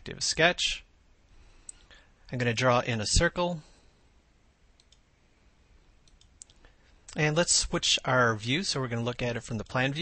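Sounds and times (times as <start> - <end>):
faint computer mouse clicks: 4.8 - 5.1, 6.0 - 7.2.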